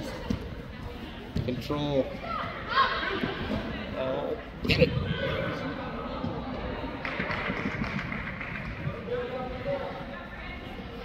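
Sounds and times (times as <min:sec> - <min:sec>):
murmur of background chatter: 0:00.0 - 0:11.0.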